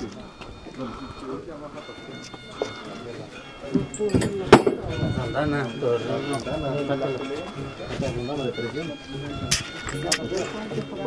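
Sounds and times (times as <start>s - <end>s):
people talking: 0.0s - 11.0s.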